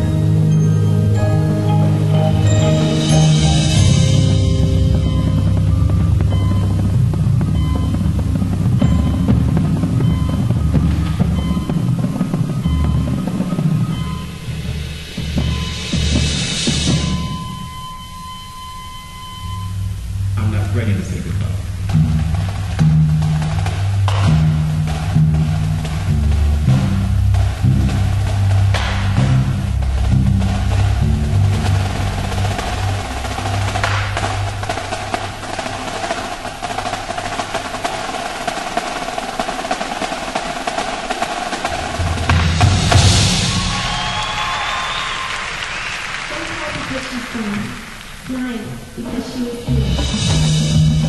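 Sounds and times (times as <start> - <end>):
low bass notes: 0.0 - 18.2, 19.3 - 35.8, 41.7 - 43.8, 49.6 - 51.0
drum strokes and rolls: 0.0 - 51.0
percussion ensemble playing: 0.0 - 51.0.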